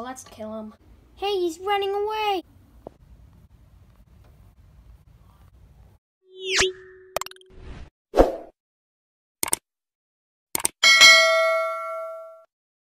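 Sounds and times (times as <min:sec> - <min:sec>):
short clicks and pops: 0:09.4 - 0:09.6, 0:10.5 - 0:10.8
bell ding: 0:10.8 - 0:12.5.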